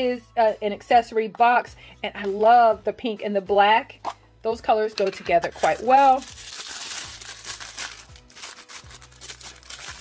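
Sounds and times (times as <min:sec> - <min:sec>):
soft background music: 0:00.0 - 0:10.0
tissue paper crinkling: 0:05.5 - 0:10.0.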